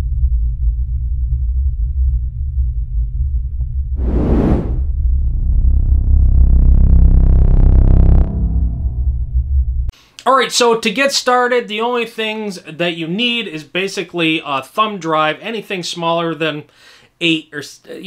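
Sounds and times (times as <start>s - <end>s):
deep steady rumble: 0.0s - 9.9s
whoosh: 4.0s - 5.0s.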